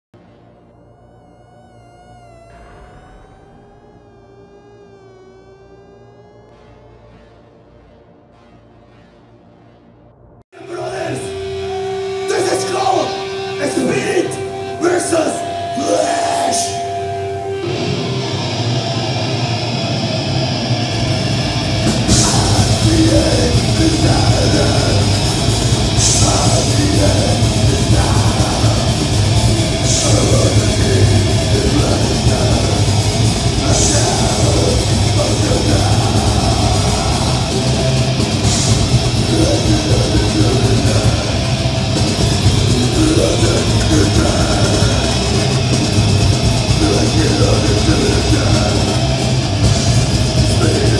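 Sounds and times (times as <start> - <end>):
distorted electric guitars: 0.1 - 7.1, 10.5 - 50.9
bass guitar: 10.8 - 50.9
drum kit: 21.0 - 50.9.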